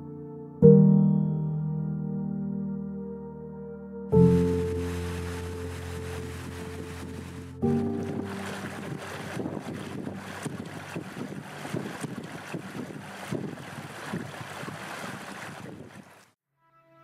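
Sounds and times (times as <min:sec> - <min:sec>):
stream running over rocks: 0:04.3 - 0:16.3
wind buffeting microphone: 0:06.1 - 0:16.2.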